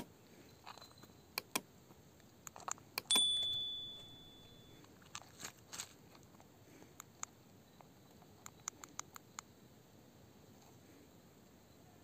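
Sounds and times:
crystal clinking against metal: 3.1s - 4.8s.

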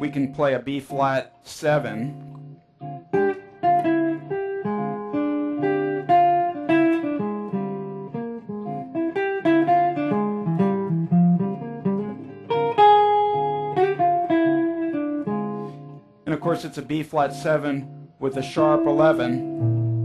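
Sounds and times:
electric guitar jazz line: 0.0s - 20.0s.

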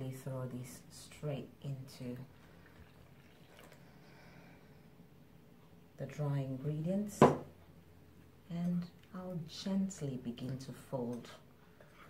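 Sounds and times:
milk pouring into a bowl: 2.4s - 4.2s.

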